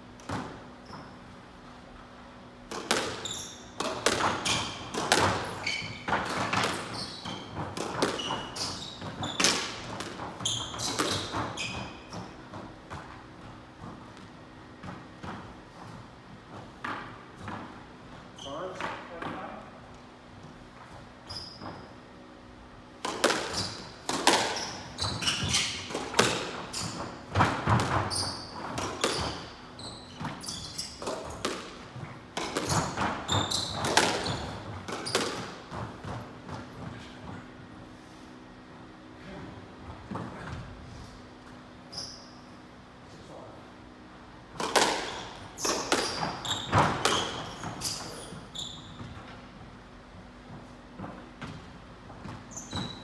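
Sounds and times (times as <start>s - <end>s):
shoes squeaking on wooden floor: 0.3s - 1.3s, 2.8s - 19.5s, 20.3s - 22.2s, 23.0s - 37.9s, 39.7s - 42.6s, 44.7s - 53.0s
squash ball cracks against walls: 2.6s - 13.8s, 22.9s - 36.8s, 44.6s - 48.1s.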